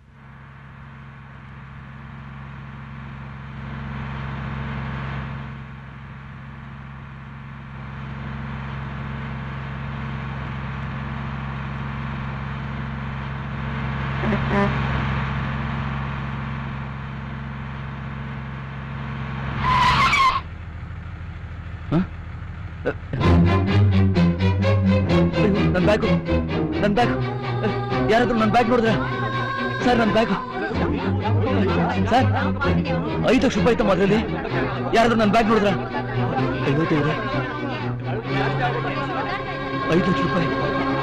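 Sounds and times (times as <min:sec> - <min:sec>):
bus engine running: 0:00.0 - 0:41.0
short loud screech: 0:19.6 - 0:20.5.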